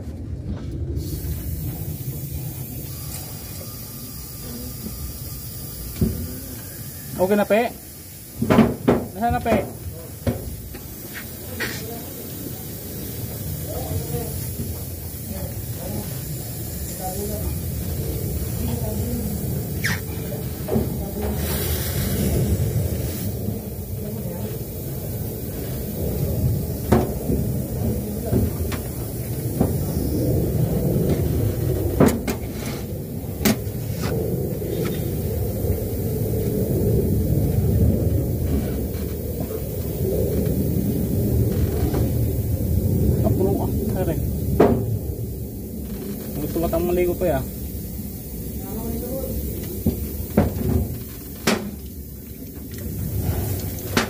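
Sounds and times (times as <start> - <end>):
low rumble: 0.0 - 54.0
gas hissing: 1.0 - 54.0.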